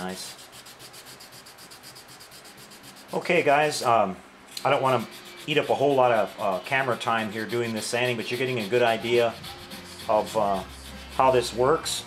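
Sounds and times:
sandpaper rubbing on plastic: 0.0s - 3.8s, 4.7s - 12.0s.

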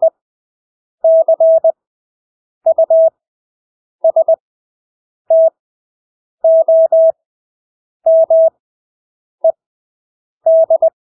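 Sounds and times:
morse code beeps: 2.7s - 3.1s, 6.5s - 7.2s, 8.1s - 8.5s, 10.5s - 11.0s.

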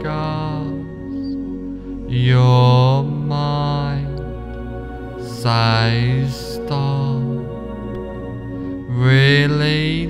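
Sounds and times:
chanted voice: 0.0s - 10.0s
low drone: 0.0s - 10.0s.

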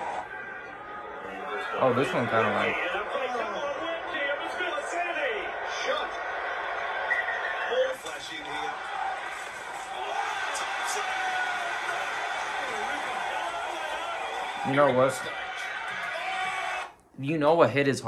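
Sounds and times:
stadium crowd: 0.0s - 17.0s.

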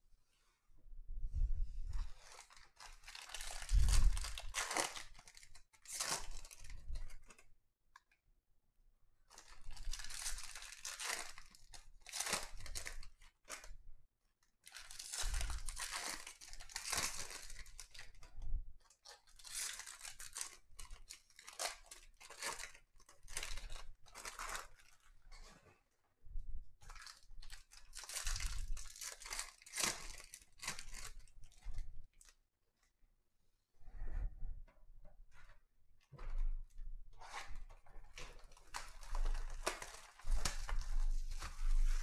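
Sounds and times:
foil wrappers tearing and crinkling: 2.2s - 7.4s, 9.4s - 13.6s, 14.7s - 18.1s, 19.3s - 25.0s, 26.9s - 31.3s, 38.5s - 42.0s.

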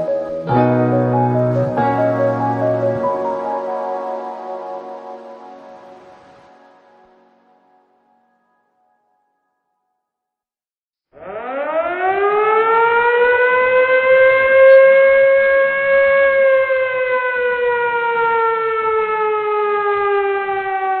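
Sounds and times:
siren wailing: 11.2s - 21.0s.

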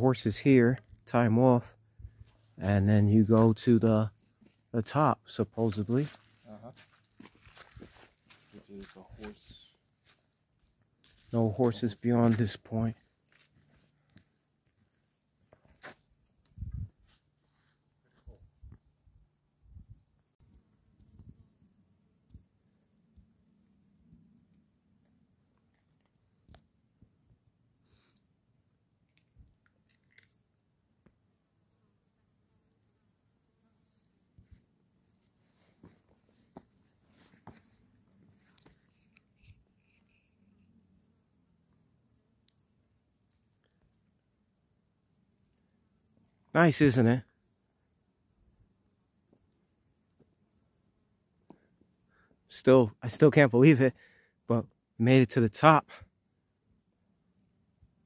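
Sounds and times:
footsteps on dirt: 2.1s - 4.7s, 5.8s - 16.1s.

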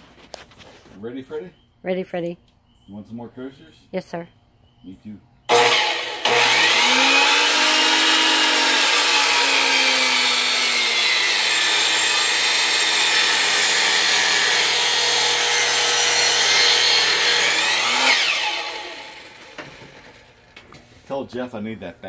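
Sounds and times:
miter saw cutting log: 5.5s - 20.5s.

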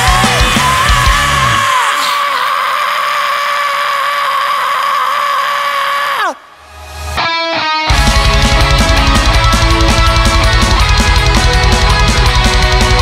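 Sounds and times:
metal song: 0.0s - 1.8s, 6.6s - 13.0s.

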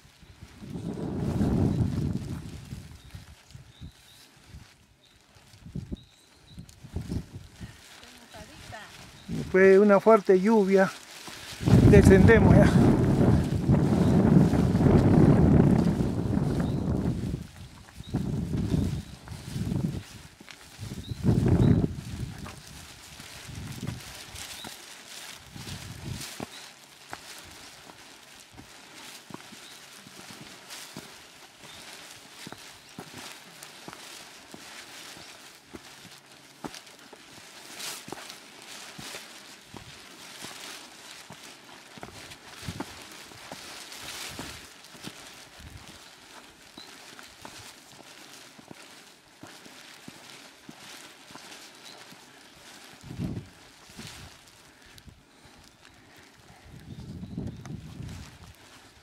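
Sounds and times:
footsteps crunching on stone path: 0.0s - 59.0s.

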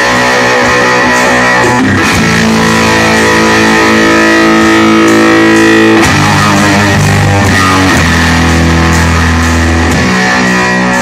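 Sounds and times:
electric guitar sustained chord: 0.0s - 11.0s
live rock band playing: 0.0s - 11.0s.

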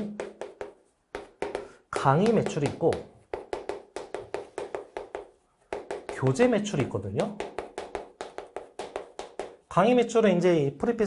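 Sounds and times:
chalk tapping on chalkboard: 0.0s - 9.8s.

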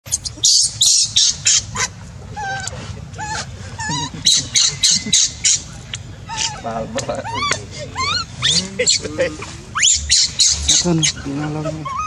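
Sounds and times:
baby monkey screeching: 0.1s - 5.7s, 6.3s - 12.0s.

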